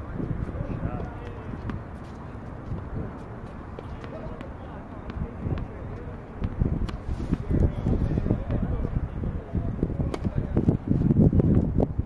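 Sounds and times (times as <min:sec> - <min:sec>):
murmur of voices: 0:00.0 - 0:11.2
tennis ball bouncing on hard court: 0:02.7 - 0:07.5.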